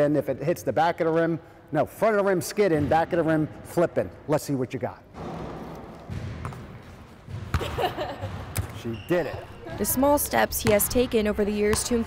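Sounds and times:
basketball striking thud: 5.2 - 8.8.

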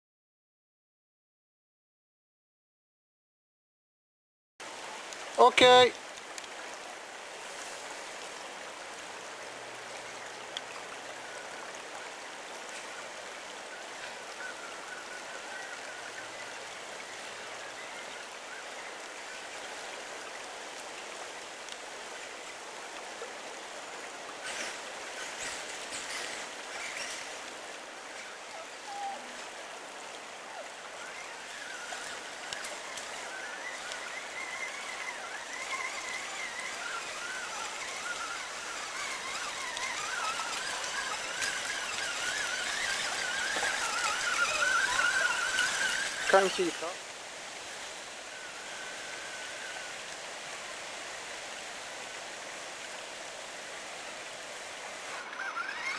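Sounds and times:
stream water running: 4.6 - 55.9.

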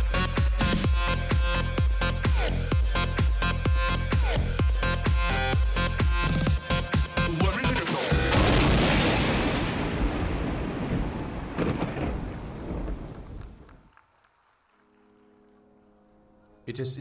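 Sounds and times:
dance music: 0.0 - 8.4
audience applause and cheering: 11.0 - 16.0.

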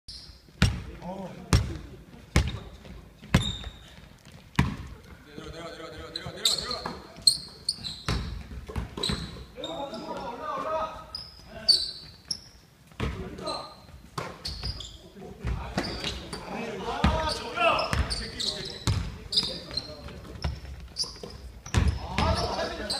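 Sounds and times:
sneakers squeaking on court: 0.1 - 0.9, 1.5 - 5.2, 5.9 - 10.2, 11.0 - 22.9
basketball bouncing on gym floor: 0.5 - 5.2, 8.0 - 9.4, 12.9 - 13.3, 15.4 - 16.2, 17.0 - 22.5.

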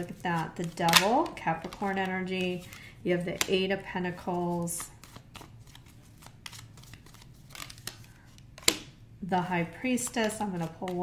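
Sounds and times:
cards rustling and clicking: 0.0 - 9.0, 9.9 - 11.0.

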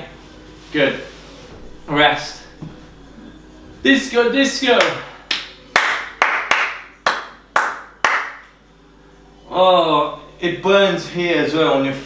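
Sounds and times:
hands clapping with echo: 4.8 - 8.6.

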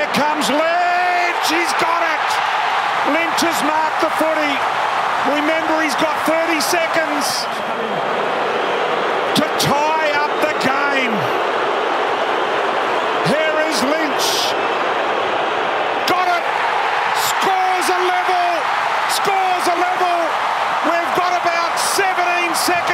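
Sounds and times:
stadium crowd roar: 0.0 - 22.9.

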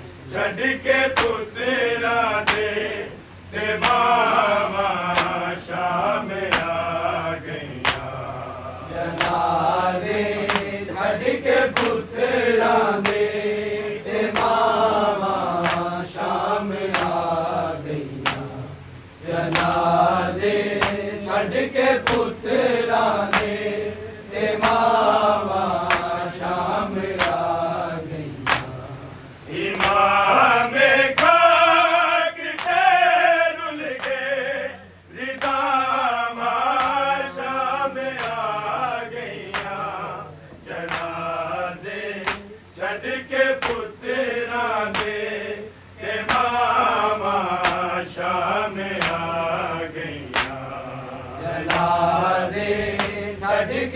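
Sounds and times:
men chanting a lament: 0.0 - 53.9
hands beating chest rhythmically: 0.5 - 3.0, 3.6 - 53.9.

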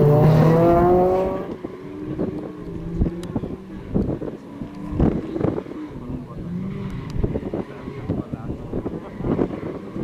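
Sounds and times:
race car engine revving: 0.0 - 10.0.

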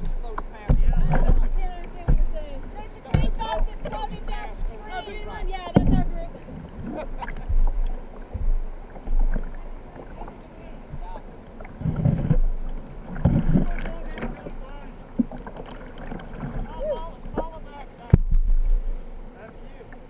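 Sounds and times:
wind on microphone: 0.0 - 14.5, 15.1 - 19.1
water splashing around kayak: 0.0 - 20.0.

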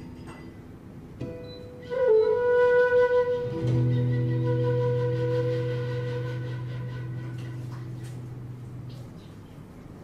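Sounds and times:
flute holding a note: 1.8 - 7.7.

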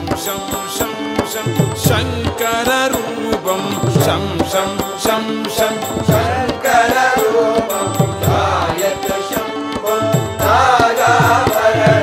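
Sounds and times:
person chanting: 0.0 - 12.0.

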